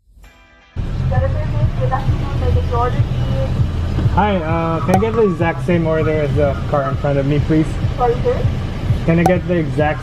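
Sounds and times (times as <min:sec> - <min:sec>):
car engine idling: 0:00.8 - 0:10.0.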